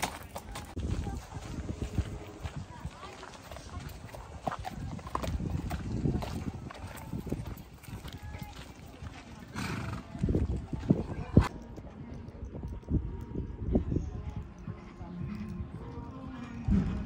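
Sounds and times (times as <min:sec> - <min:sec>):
people talking: 0:00.0 - 0:16.8
hooves on gravel: 0:00.0 - 0:17.0.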